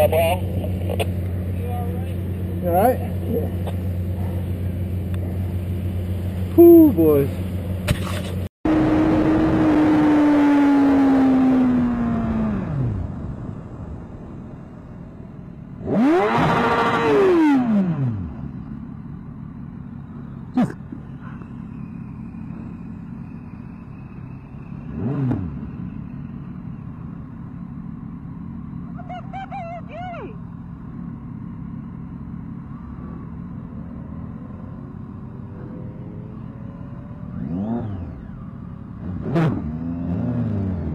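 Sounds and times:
motorcycle engine: 0:00.0 - 0:40.9
passing traffic: 0:00.0 - 0:40.9.

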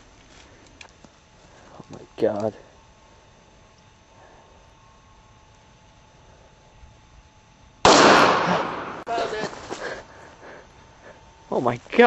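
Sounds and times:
loud gunshot: 0:07.8 - 0:09.2.

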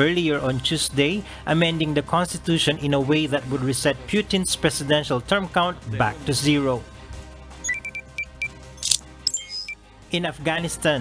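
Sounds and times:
sharp clicks: 0:07.7 - 0:09.8
short high beeps: 0:07.7 - 0:09.8.

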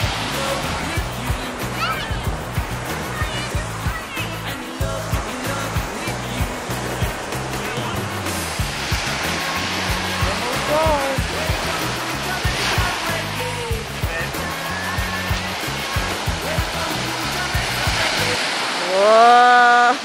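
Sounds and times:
small waves breaking on shore: 0:00.0 - 0:20.0.

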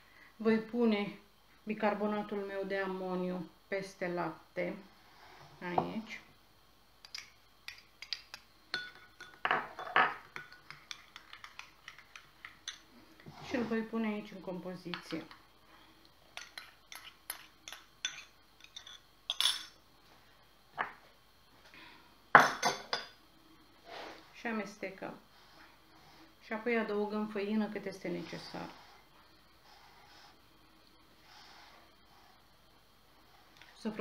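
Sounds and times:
metal spoon stirring in glass bowl: 0:07.0 - 0:12.9, 0:16.4 - 0:19.7.

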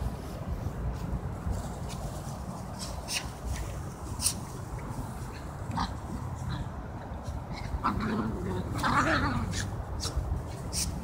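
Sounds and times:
dogs play-fighting: 0:02.0 - 0:11.0.

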